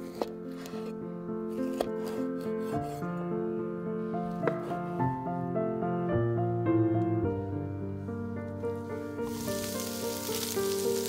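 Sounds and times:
background music: 0.0 - 11.0
knife slicing on wooden board: 1.5 - 3.0.

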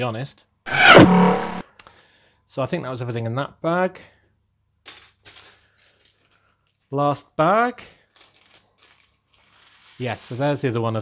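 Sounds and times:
plastic bag crinkling: 8.0 - 10.6.

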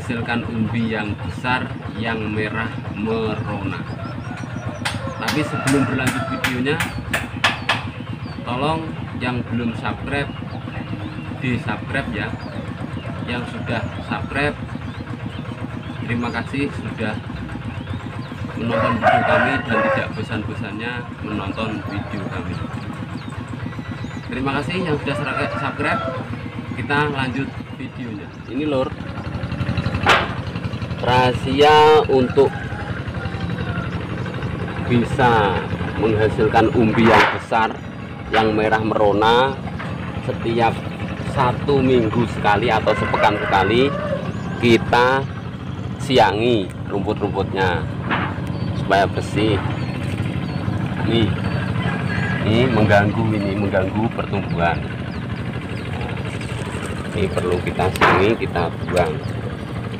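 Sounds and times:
small engine humming: 0.0 - 59.9.

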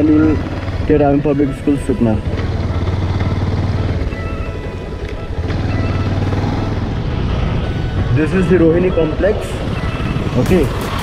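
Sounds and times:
motorcycle engine cruising: 0.0 - 11.0
wind and road noise: 0.0 - 11.0.

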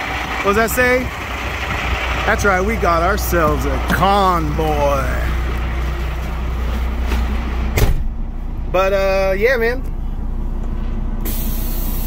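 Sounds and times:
diesel engine idling: 0.0 - 12.0
loud hiss of air: 11.2 - 12.0.

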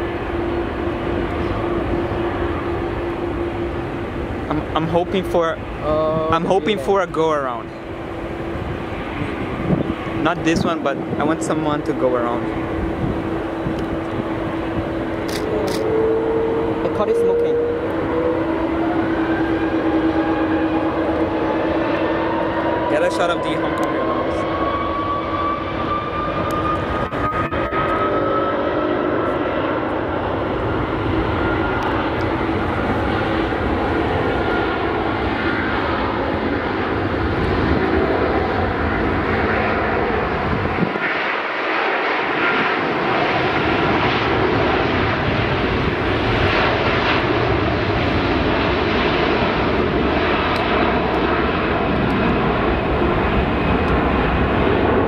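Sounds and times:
jet engines spooling up: 0.0 - 55.0.

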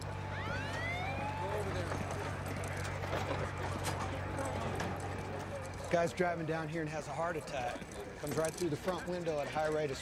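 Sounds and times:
light clatter: 7.3 - 10.0.

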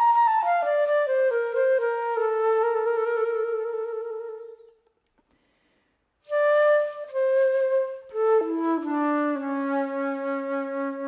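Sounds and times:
flute playing: 0.0 - 4.8, 6.2 - 11.0.

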